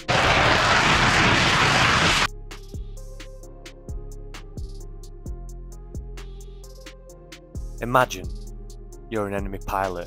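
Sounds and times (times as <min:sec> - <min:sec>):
jet engine roar: 0:00.0 - 0:02.3.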